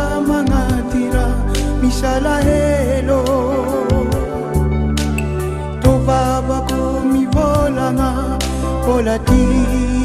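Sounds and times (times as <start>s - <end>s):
steady bass line: 0.0s - 10.0s.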